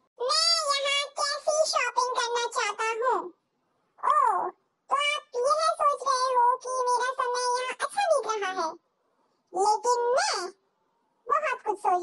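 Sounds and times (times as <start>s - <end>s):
high-pitched child-like voice speaking: 0.2s - 3.4s, 4.0s - 8.9s, 9.5s - 10.6s, 11.2s - 12.0s.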